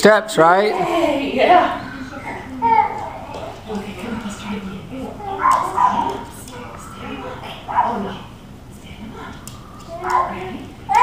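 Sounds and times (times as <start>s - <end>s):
baby babbling: 1.8s - 3.6s.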